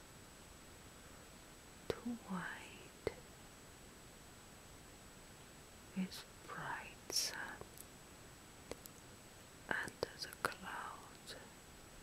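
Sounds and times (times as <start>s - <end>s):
woman whispering: 1.9s - 3.2s, 6.0s - 7.7s, 9.7s - 11.6s
small sharp clicks: 8.7s - 9.1s.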